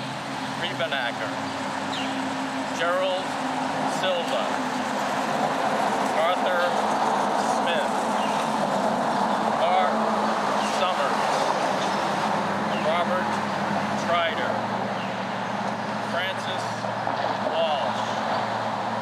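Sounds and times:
man reading aloud: 0.6 - 1.4, 2.7 - 3.3, 3.9 - 4.6, 6.1 - 6.8, 7.4 - 8.0, 9.6 - 11.4, 12.7 - 13.4, 14.0 - 14.6, 16.1 - 18.2.

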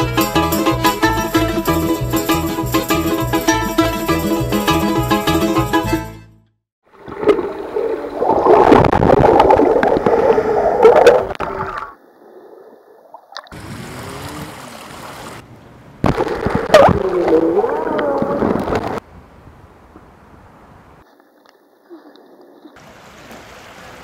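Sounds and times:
water gurgling and sloshing: 6.8 - 15.4.

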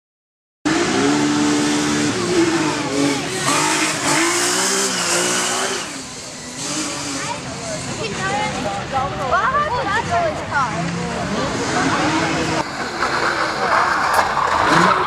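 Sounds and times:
rally car engine revving: 0.7 - 8.7, 10.7 - 15.0
spectators' voices: 2.0 - 15.0.

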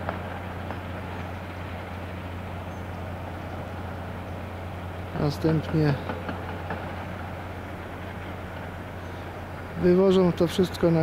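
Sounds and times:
distant heavy machinery rumble: 0.0 - 11.0.

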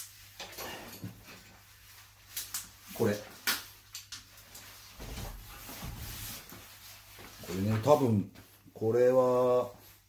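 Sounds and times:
rustling handling noise: 0.0 - 10.0.

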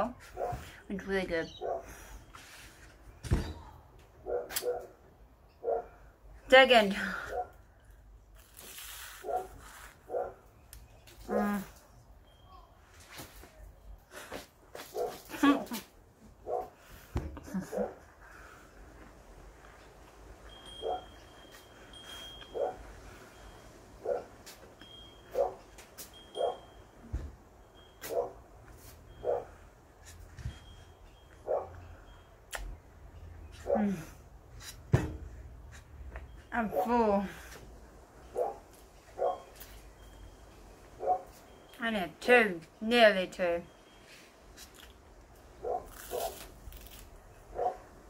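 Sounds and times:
dog barking: 1.6 - 1.9, 4.2 - 5.0, 5.6 - 6.0, 10.1 - 10.4, 14.9 - 15.2, 16.4 - 16.7, 22.5 - 22.8, 24.0 - 24.3, 25.3 - 25.6, 26.4 - 26.6, 28.1 - 28.4, 29.2 - 29.5, 31.4 - 31.8, 38.3 - 38.6, 39.2 - 39.5, 41.0 - 41.3, 45.6 - 46.3, 47.5 - 47.8.

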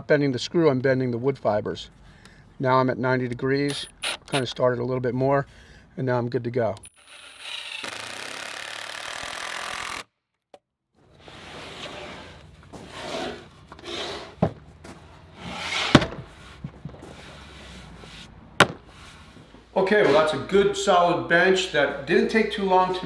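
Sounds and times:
cordless driver driving screw: 3.7 - 4.5, 6.8 - 10.1
wooden bench creaking: 15.4 - 17.3
wood knocking: 18.6 - 18.9.

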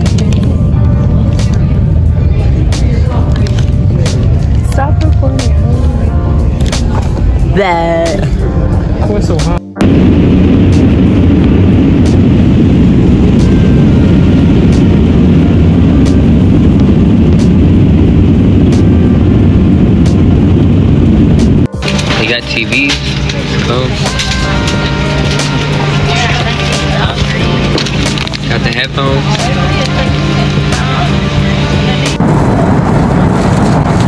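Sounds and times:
music: 0.0 - 33.9
jet engine and airframe rumble: 0.0 - 34.0.

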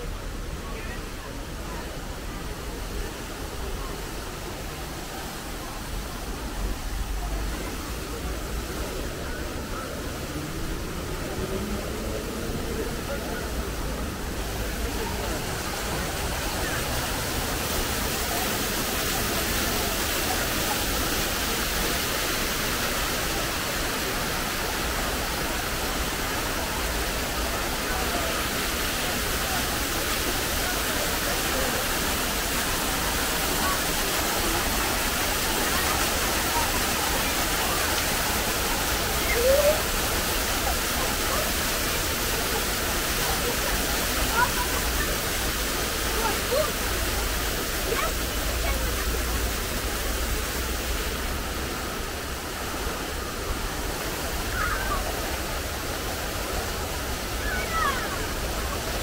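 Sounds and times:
fountain water splashing: 0.0 - 59.0.

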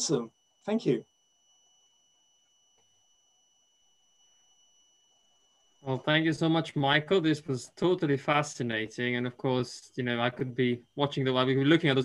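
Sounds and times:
faint high-pitched tone: 0.0 - 12.0.

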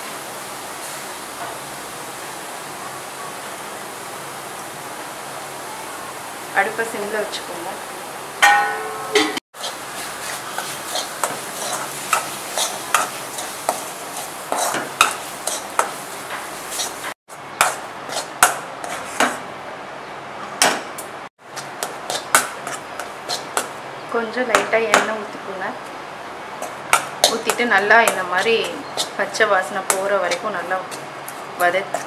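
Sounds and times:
food sizzling: 0.0 - 19.0, 21.4 - 32.0
spoon scraping metal pan: 8.6 - 13.6, 26.6 - 32.0.

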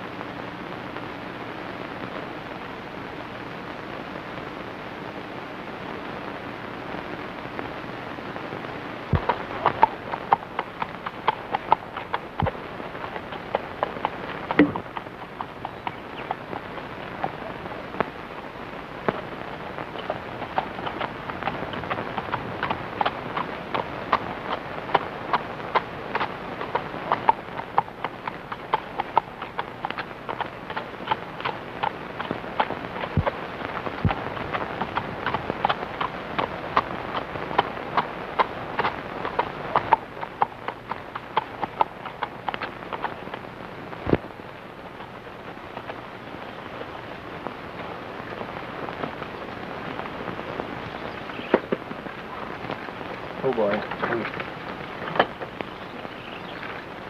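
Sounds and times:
background hiss: 0.0 - 57.0
horse hooves on dirt: 8.5 - 57.0.

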